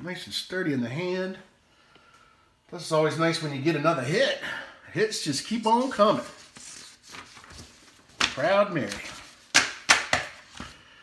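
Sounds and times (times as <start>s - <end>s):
cards tapping on tabletop: 9.5s - 10.7s.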